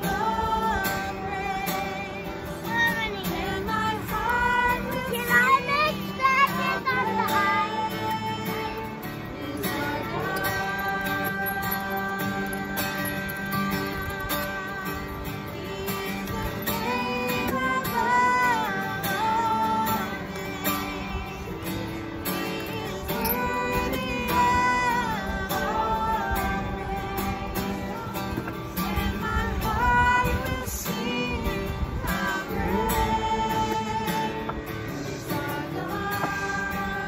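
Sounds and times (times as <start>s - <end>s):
acoustic guitar strumming: 0.0s - 37.0s
people singing: 0.0s - 37.0s.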